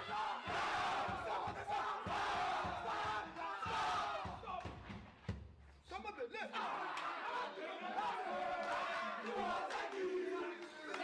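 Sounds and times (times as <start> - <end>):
men shouting and chanting: 0.0 - 4.8, 5.9 - 11.0.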